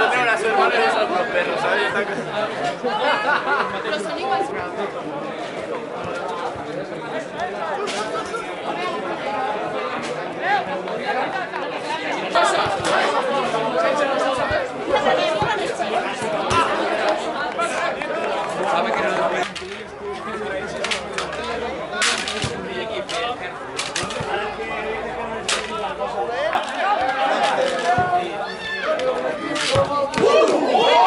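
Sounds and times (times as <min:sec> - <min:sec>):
voices calling out and chattering: 0:00.0 - 0:31.0.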